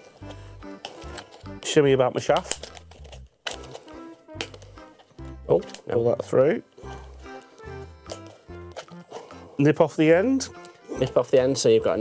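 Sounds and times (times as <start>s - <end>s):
rubber balloon clicks and crinkles: 0.0s - 9.6s, 10.4s - 11.5s
quiet background music: 0.0s - 12.0s.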